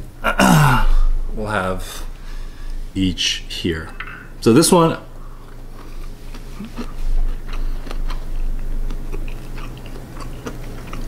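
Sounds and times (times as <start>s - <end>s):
mouth chewing crunchy food: 5.1s - 11.0s.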